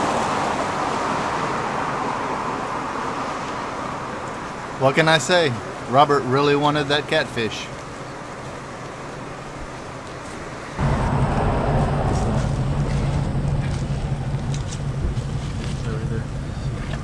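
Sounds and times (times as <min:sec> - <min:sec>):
steady low rumble: 0:10.8 - 0:16.5.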